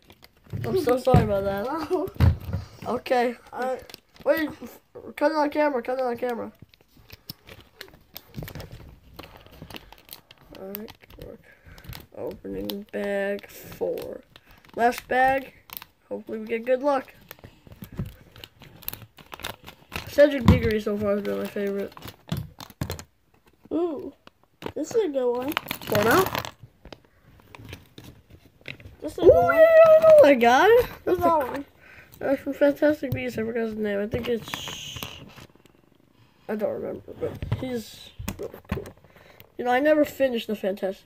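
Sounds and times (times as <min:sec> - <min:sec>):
packet rustling: 0:00.0 - 0:40.5.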